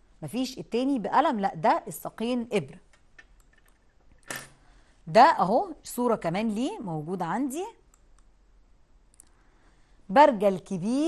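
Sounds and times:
faint computer mouse clicks: 0:07.8 - 0:08.4.

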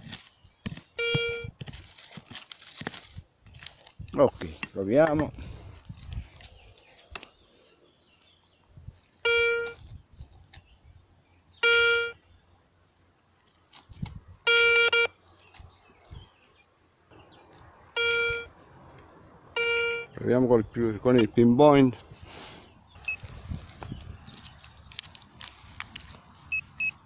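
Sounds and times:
metal detector short beeps: 0:01.0 - 0:01.6, 0:09.2 - 0:09.8, 0:11.6 - 0:12.2, 0:14.5 - 0:15.2, 0:18.0 - 0:18.5, 0:19.6 - 0:20.2, 0:23.0 - 0:23.2, 0:26.5 - 0:27.0.

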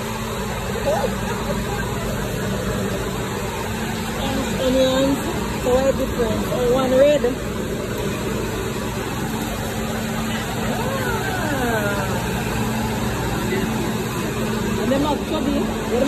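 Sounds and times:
low store hum: 0:00.0 - 0:16.0.

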